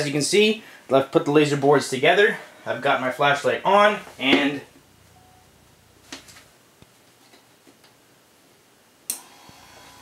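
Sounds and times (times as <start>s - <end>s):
actuator motor humming and whining: 9.2s - 10.0s.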